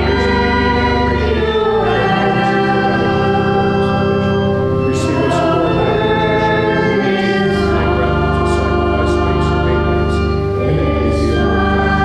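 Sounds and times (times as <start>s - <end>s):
church organ: 0.0s - 12.0s
voices singing a hymn: 0.0s - 12.0s.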